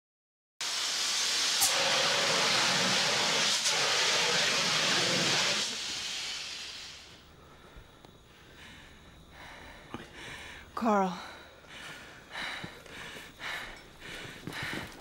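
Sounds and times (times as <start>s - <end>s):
fire extinguisher hissing: 0.6s - 7.3s.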